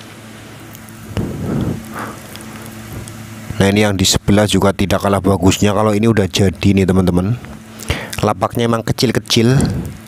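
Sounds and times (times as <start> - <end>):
faint steady hum: 0.0 - 10.0
wind noise on microphone: 1.1 - 1.9.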